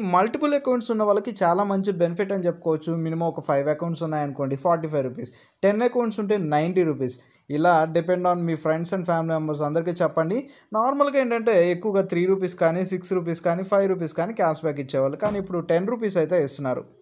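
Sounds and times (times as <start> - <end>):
faint high-pitched whine: 0.0 - 17.0
man talking: 0.0 - 17.0.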